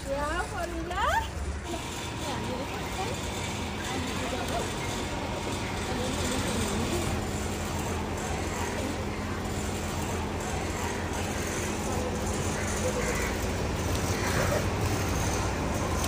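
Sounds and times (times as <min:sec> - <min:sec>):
faint voices: 0:00.0 - 0:16.0
street traffic: 0:00.0 - 0:16.0.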